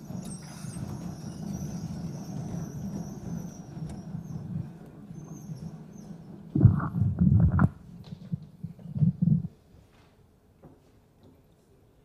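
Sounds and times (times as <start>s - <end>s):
people shuffling and moving: 0.0s - 11.9s.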